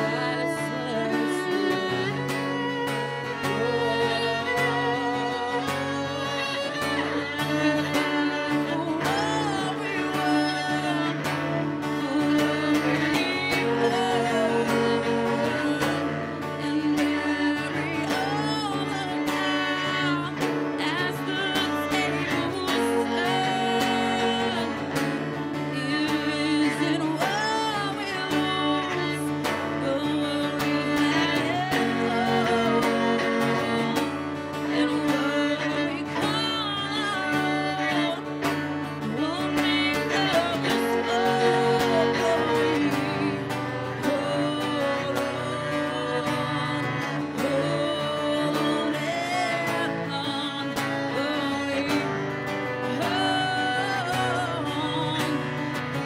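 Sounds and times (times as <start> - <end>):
bowed cello: 0.0 - 56.0
strummed acoustic guitar: 0.0 - 56.0
woman singing: 0.0 - 56.0.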